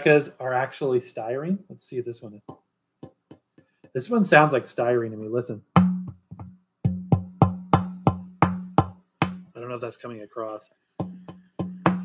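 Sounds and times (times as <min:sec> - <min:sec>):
tapping on a vinyl record: 0:10.4 - 0:12.0.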